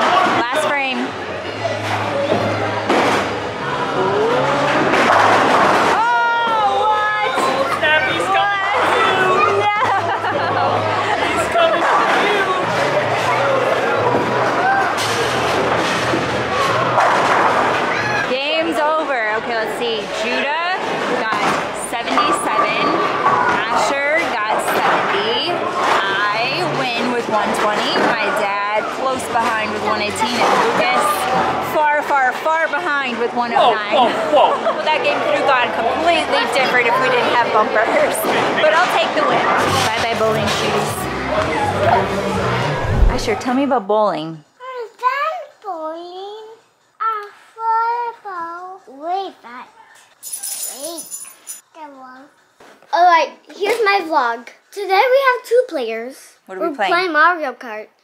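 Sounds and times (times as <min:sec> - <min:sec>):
people talking: 0:18.3 - 0:23.0, 0:23.6 - 0:42.2, 0:42.8 - 0:45.9.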